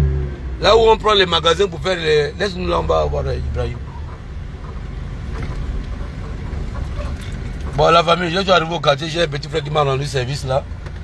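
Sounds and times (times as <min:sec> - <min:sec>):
car engine rumble inside cabin: 0:00.0 - 0:11.0.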